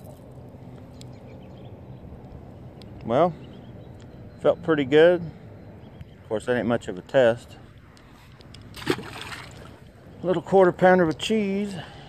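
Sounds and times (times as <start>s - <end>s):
faint wind: 0.0s - 12.0s
faint water: 7.6s - 12.0s
splash in water: 8.8s - 9.8s.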